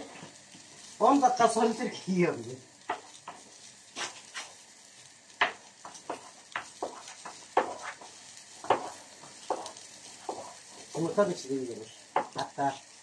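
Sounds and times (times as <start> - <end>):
pastry sizzling in a pan: 0.0 - 13.0
sharp pops and crackles: 0.0 - 13.0.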